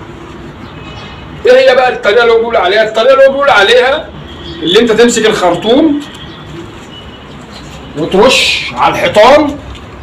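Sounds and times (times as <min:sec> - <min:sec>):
low outdoor ambience: 0:00.0 - 0:10.0.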